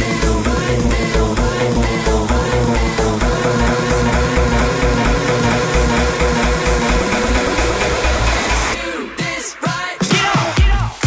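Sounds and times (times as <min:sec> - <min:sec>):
electronic dance music: 0:00.0 - 0:11.0
kick drum beat: 0:10.1 - 0:11.0.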